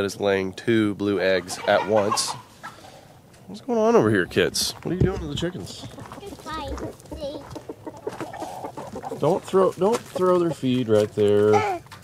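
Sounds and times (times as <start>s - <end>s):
hens clucking: 1.0s - 12.0s.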